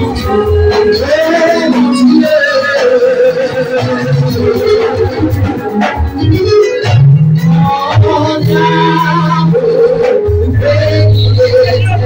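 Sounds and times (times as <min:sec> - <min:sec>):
music: 0:00.0 - 0:12.0.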